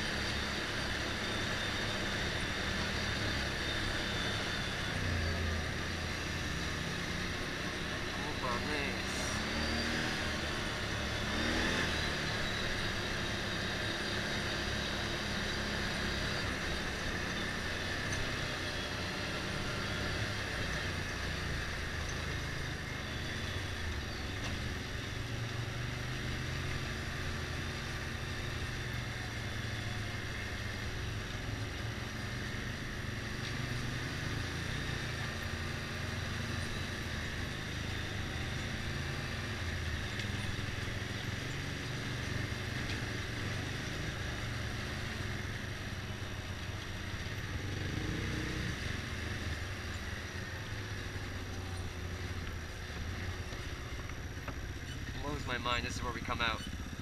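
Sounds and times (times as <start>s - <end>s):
motorcycle engine running: 0.0s - 57.0s.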